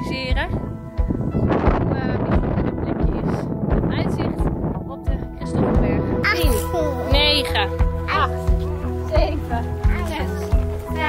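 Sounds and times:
background music: 0.0s - 11.0s
wind buffeting microphone: 0.0s - 11.0s.

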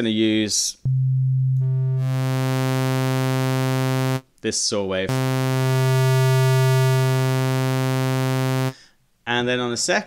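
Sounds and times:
low synth note turning buzzy: 0.9s - 4.2s, 5.1s - 8.8s.

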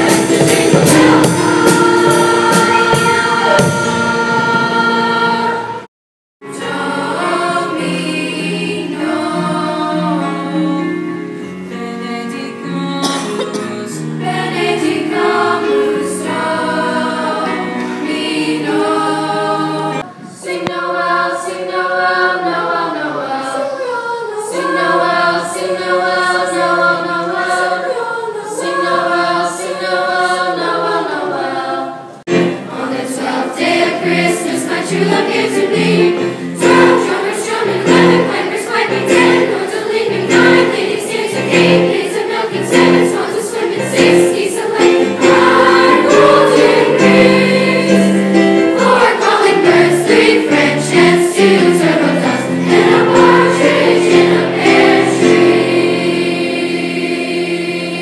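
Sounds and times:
steady beat: 0.0s - 4.9s
keyboard accompaniment: 0.0s - 23.1s, 24.0s - 58.0s
choir singing: 0.0s - 58.0s.

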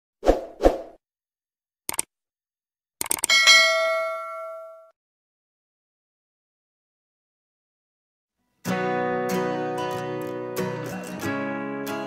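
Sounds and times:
quick clicks: 1.9s - 2.1s, 3.0s - 3.3s
bell-like notification ding: 3.3s - 4.9s.

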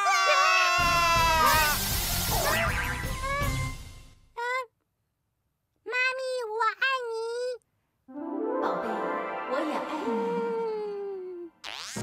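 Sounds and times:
cartoon monster squeaky calls: 2.3s - 3.7s, 11.6s - 12.0s.

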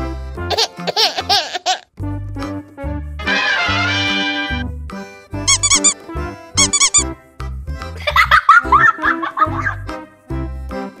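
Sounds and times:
background music with bass line: 0.0s - 11.0s
squeaky chirps: 5.5s - 6.0s, 6.6s - 7.0s.

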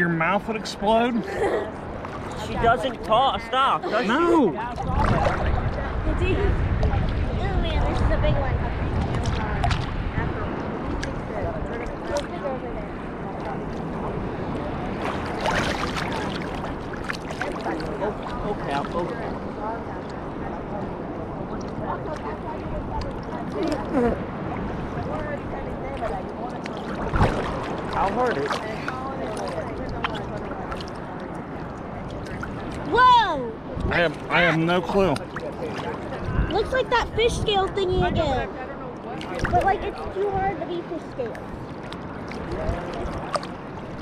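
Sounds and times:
small waves lapping: 0.0s - 44.0s
water splash: 4.2s - 8.1s, 8.8s - 12.6s, 13.3s - 19.8s, 23.0s - 36.9s, 39.1s - 40.4s, 41.2s - 44.0s
wind on microphone: 4.4s - 34.3s, 35.0s - 44.0s.

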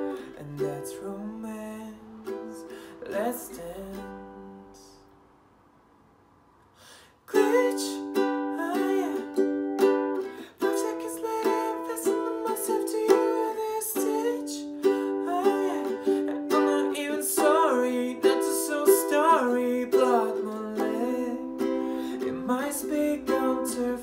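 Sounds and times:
ukulele strumming chords: 0.0s - 5.1s, 7.3s - 24.0s.

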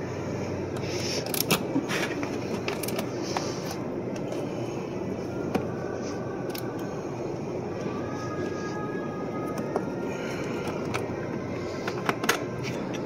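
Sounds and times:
mechanical background hum: 0.0s - 13.0s.

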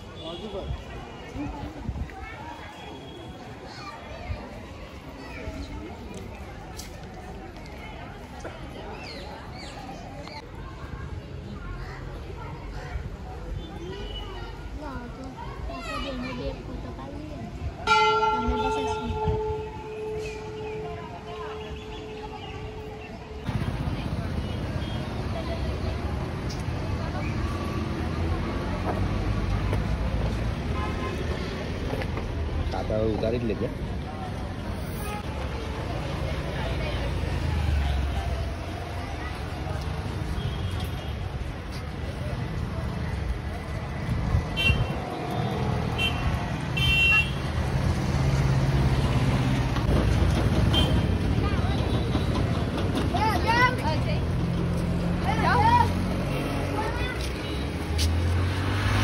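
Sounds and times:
people talking: 0.0s - 44.1s, 50.3s - 59.0s
traffic rumble: 0.0s - 59.0s
voices: 0.0s - 59.0s
vehicle horn toots: 46.0s - 47.4s.

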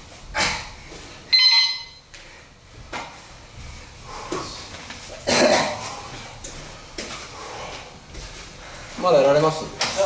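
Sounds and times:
high-pitched timer beep: 1.3s - 2.0s.

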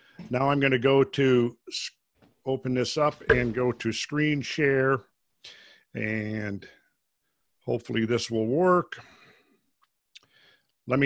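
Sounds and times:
man talking: 0.2s - 5.2s, 5.9s - 6.8s, 7.6s - 9.0s.

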